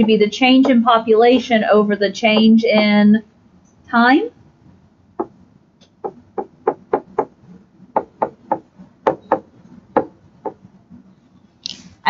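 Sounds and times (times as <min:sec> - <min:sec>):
stylus tapping on tablet screen: 0:02.3 - 0:02.9, 0:05.2 - 0:07.3, 0:08.0 - 0:10.6.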